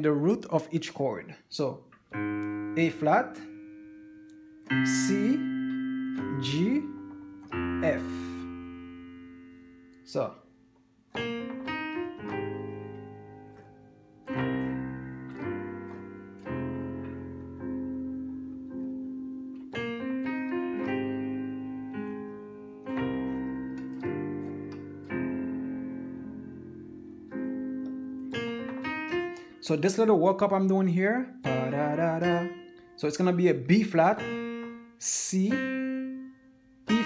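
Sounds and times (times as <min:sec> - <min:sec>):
digital piano chords: 0:00.0 - 0:37.0.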